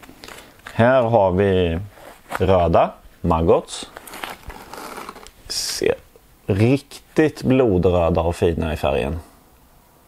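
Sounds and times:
plastic bag crinkling: 0:03.8 - 0:05.4.

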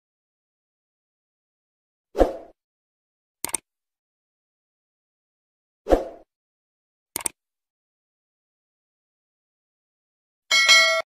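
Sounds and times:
double mouse click: 0:03.4 - 0:03.6, 0:07.2 - 0:07.4.

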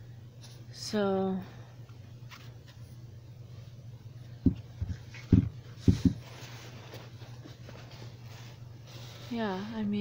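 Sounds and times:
steady low hum: 0:00.0 - 0:10.0
fabric rustling: 0:04.9 - 0:09.8.

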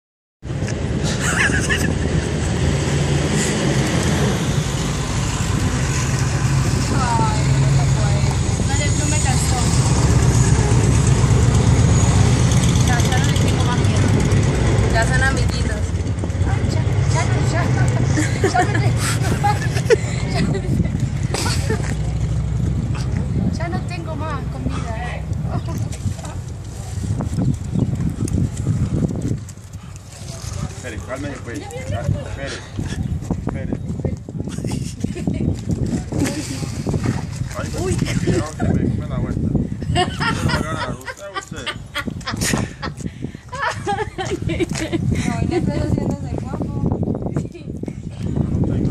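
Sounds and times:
motorcycle engine passing: 0:02.2 - 0:24.9
hooves clopping on pavement: 0:24.6 - 0:34.4.

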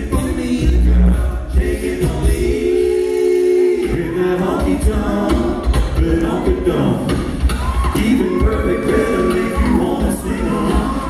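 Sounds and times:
a cappella group singing: 0:00.0 - 0:11.0.

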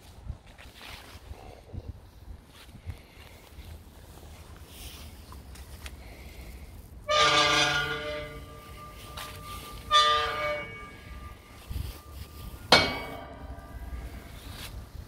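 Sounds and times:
bell tolling: 0:07.1 - 0:14.5.

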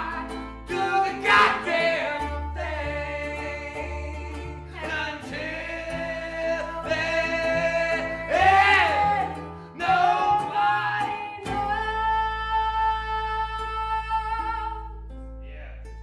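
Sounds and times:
fiddle: 0:00.0 - 0:14.4
person singing: 0:00.0 - 0:15.0
acoustic guitar: 0:00.0 - 0:16.0
strummed ukulele: 0:00.0 - 0:16.0.

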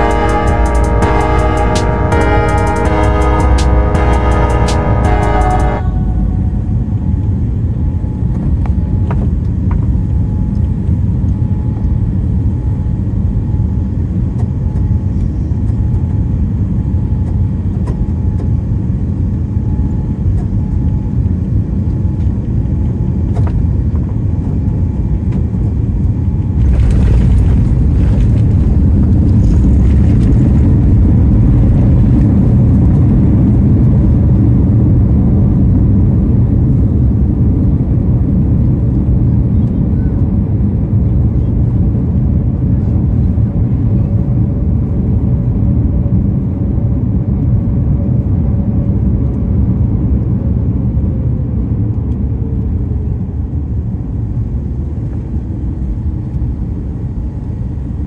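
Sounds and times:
airliner cabin rumble: 0:05.8 - 0:58.0.

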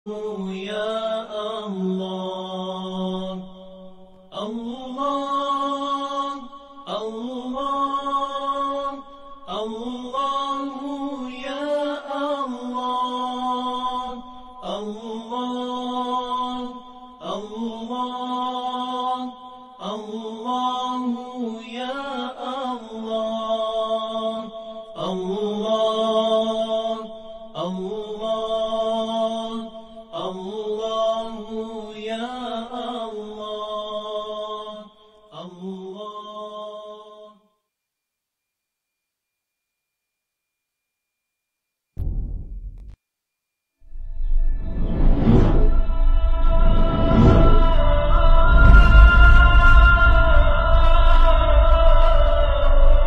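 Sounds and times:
person chanting: 0:00.1 - 0:37.4, 0:44.6 - 0:53.0.

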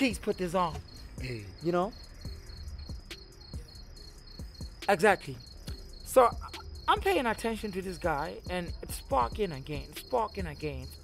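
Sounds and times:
crickets chirping: 0:00.0 - 0:11.0
man speaking: 0:06.1 - 0:06.7.

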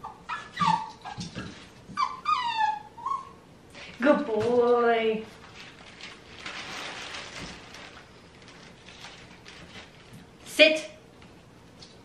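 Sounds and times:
puppy whimpering: 0:00.0 - 0:03.4.

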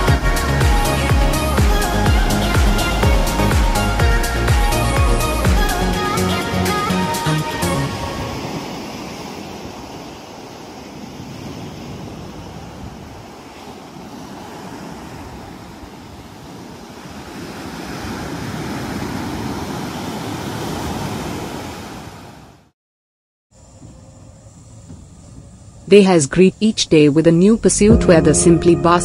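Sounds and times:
ocean surf breaking: 0:00.0 - 0:22.7.

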